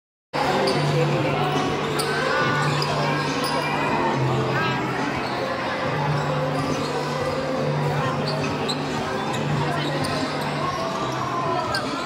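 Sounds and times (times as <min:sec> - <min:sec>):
crowd voices: 0:00.4 - 0:12.0.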